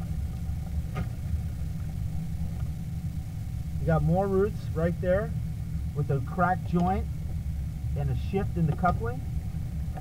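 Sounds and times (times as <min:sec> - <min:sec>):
low machine rumble: 0:00.0 - 0:10.0.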